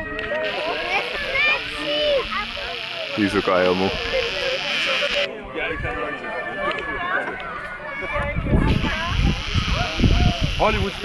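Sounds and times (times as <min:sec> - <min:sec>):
distant people chatting: 0:00.0 - 0:11.0.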